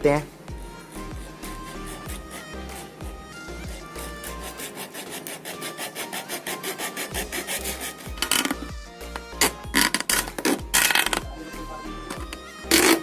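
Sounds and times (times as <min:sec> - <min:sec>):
background music: 0:00.0 - 0:13.0
blade sawing plastic bottle: 0:00.7 - 0:11.3, 0:12.0 - 0:13.0.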